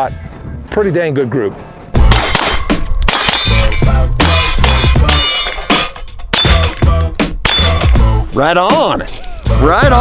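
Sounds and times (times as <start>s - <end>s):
rifle shots: 2.0s - 3.8s
steel targets ringing: 2.0s - 6.8s, 7.4s - 7.9s.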